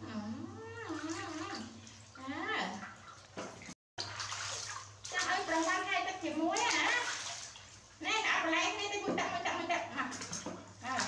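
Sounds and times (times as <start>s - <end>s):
water splashing in a metal basin: 0.8s - 8.0s, 9.0s - 11.0s.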